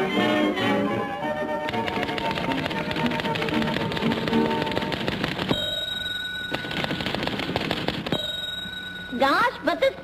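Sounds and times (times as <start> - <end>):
typewriter keys clacking: 1.7 - 5.9, 6.5 - 8.3
typewriter carriage bell dinging: 2.6 - 10.0.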